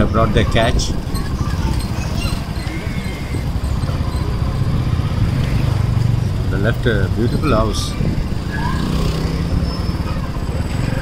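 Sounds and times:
motorcycle engine low speed: 0.0s - 11.0s
road rumble: 0.0s - 11.0s.

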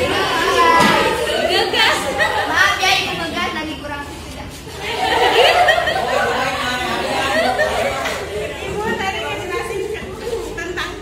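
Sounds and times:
classroom chatter: 0.0s - 11.0s.

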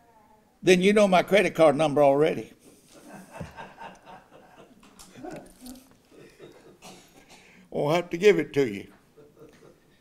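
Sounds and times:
man chuckling softly: 2.7s - 6.9s.

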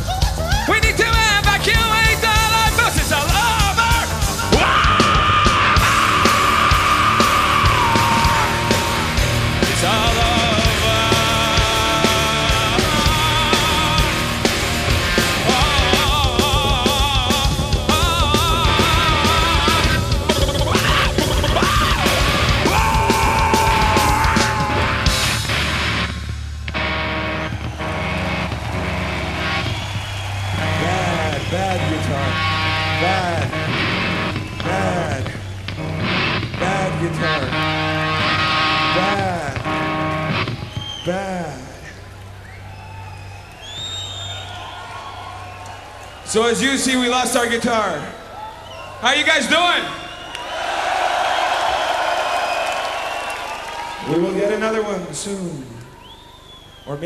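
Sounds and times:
heavy metal band playing: 0.0s - 43.0s
bass and amplifier drone: 0.0s - 47.8s
singer's long held yell: 4.4s - 14.2s, 20.8s - 25.1s.

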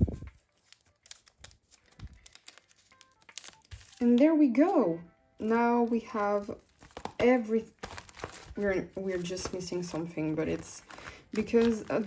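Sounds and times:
plastic rustling: 0.0s - 4.2s, 5.8s - 12.0s.

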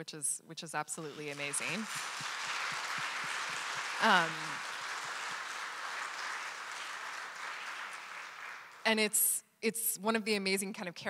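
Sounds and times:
audience applauding: 1.0s - 9.0s.

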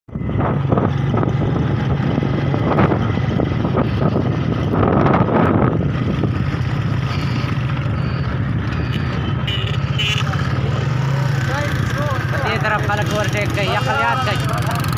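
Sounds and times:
wind buffeting microphone: 0.1s - 9.2s
motorcycle engine running: 0.1s - 14.9s.

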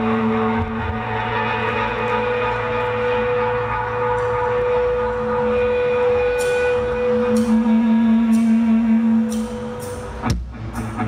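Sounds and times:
electric guitars droning chord: 0.0s - 11.0s.

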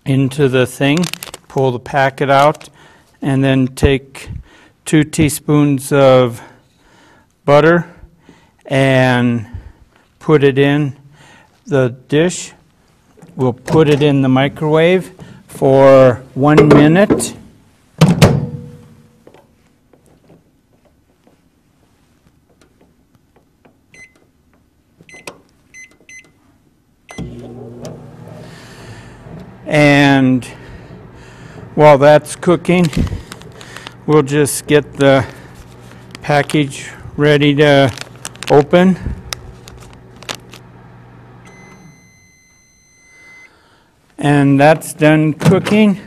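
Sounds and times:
keypad beeps: 23.9s - 24.2s, 25.1s - 26.4s
long microwave beep: 23.9s - 24.3s, 25.1s - 26.4s, 27.1s - 27.6s, 41.4s - 43.6s
microwave oven humming: 27.1s - 43.9s.

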